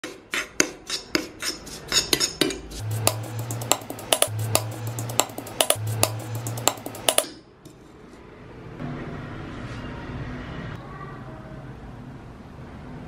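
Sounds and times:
metal spoon scraping iron pan: 0.0s - 2.9s.

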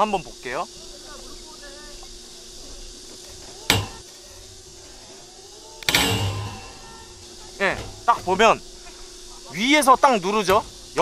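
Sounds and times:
ringing metal clank: 3.7s - 4.0s, 5.9s - 8.1s.

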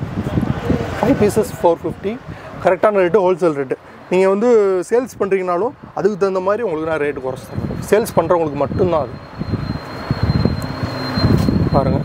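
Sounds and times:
man speaking: 1.0s - 9.2s.

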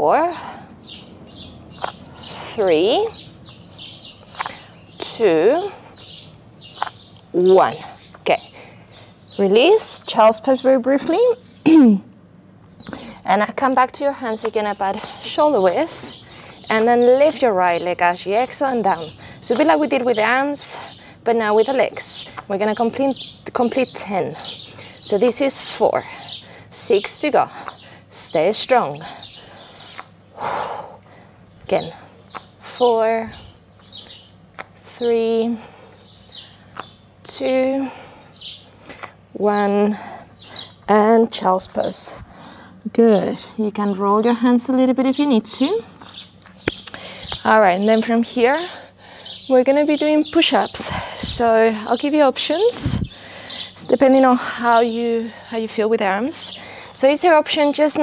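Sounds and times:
small birds chirping: 0.0s - 58.0s.

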